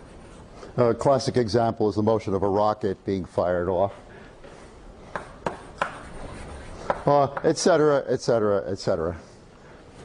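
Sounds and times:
chalk scratching on blackboard: 0:00.0 - 0:00.5, 0:05.2 - 0:07.1
chalk tapping on blackboard: 0:05.1 - 0:07.6.

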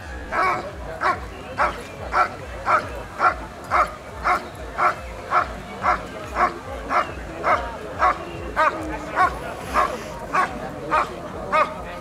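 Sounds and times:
dog barking: 0:00.3 - 0:11.7.

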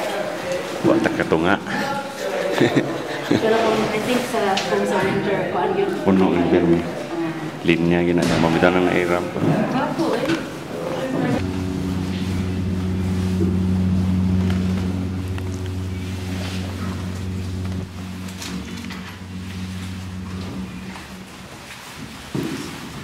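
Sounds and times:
cable car machinery hum: 0:11.4 - 0:21.8.

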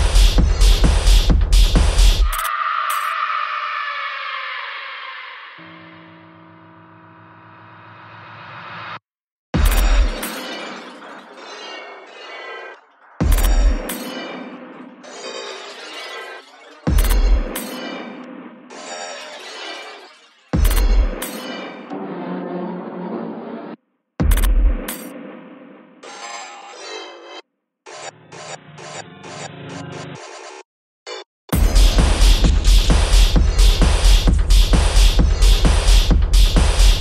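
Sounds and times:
deep bass hit: 0:31.6 - 0:37.0.

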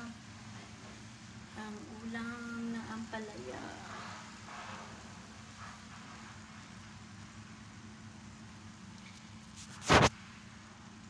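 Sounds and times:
frying pan hissing: 0:00.0 - 0:08.4
low steady hum: 0:00.0 - 0:11.0.

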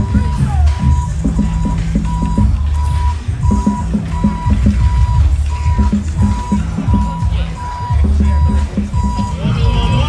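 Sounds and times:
marching band drums: 0:00.0 - 0:10.0
reversing alarm beeps: 0:00.0 - 0:10.0.

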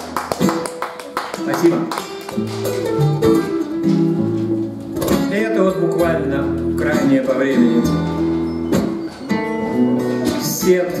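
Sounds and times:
acoustic guitars playing: 0:00.0 - 0:11.0.

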